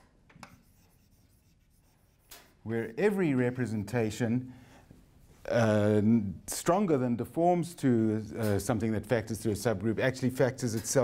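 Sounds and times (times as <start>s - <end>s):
chalk writing on blackboard: 0.4s - 2.6s.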